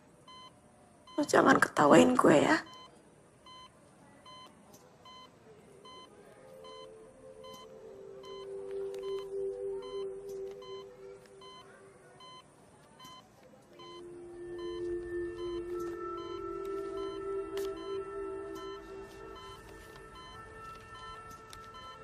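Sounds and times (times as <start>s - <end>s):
patient monitor beeping: 0.2s - 22.0s
soft music with held notes: 6.1s - 12.2s, 13.9s - 22.0s.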